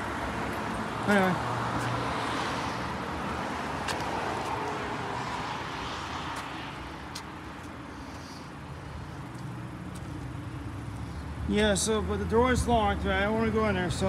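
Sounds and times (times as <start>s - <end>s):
steady traffic hum: 0.0s - 14.0s
vehicle passing: 0.0s - 14.0s.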